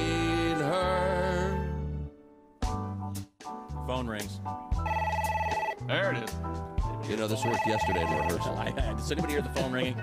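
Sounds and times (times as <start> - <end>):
telephone ring: 4.8 - 5.9, 7.4 - 8.9.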